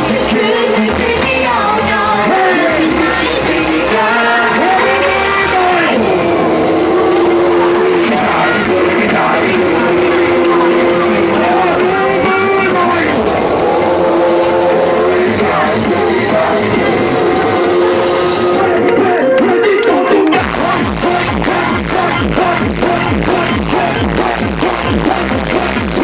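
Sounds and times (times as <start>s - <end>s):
voice on microphone: 0.0s - 19.4s
loud live music: 0.0s - 26.0s.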